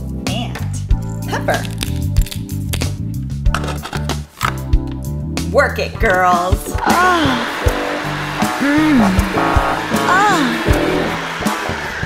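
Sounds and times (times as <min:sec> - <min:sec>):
pepper mill grinding: 0:01.6 - 0:02.9
background music with steady beat: 0:02.0 - 0:12.0.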